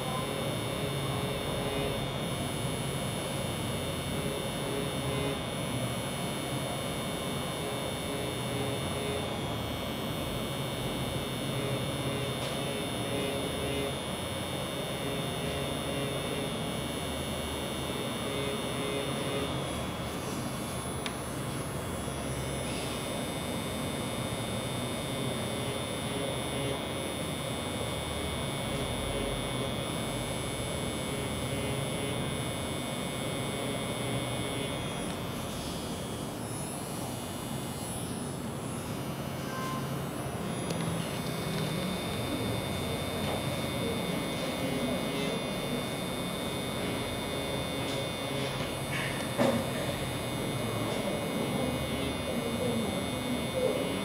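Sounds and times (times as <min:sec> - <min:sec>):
tattoo machine pen buzzing: 0:00.0 - 0:54.0.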